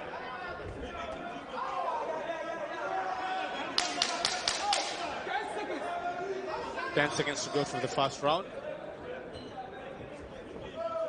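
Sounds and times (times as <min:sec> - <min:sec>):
echoing voices and chatter: 0:00.0 - 0:11.0.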